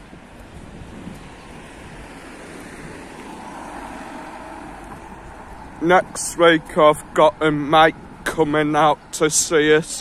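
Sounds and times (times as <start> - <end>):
car engine and tyre noise: 0.0 - 10.0
street traffic: 0.0 - 10.0.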